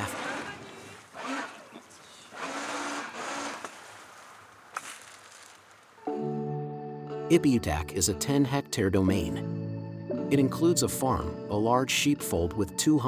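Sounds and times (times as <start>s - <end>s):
people talking: 0.0s - 2.3s, 7.3s - 9.4s
background music sustained chord: 6.1s - 13.0s.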